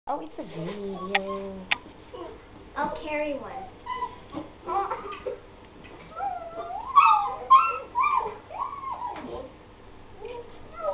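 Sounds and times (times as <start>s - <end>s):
puppies whining and whimpering: 0.8s - 2.4s, 3.8s - 5.4s, 6.1s - 9.6s.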